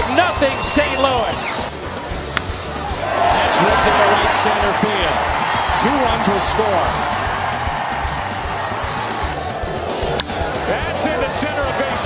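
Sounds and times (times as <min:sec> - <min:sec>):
background music: 0:00.0 - 0:12.0
crowd noise: 0:00.0 - 0:12.0
baseball bat crack: 0:02.3 - 0:02.6, 0:10.1 - 0:10.4.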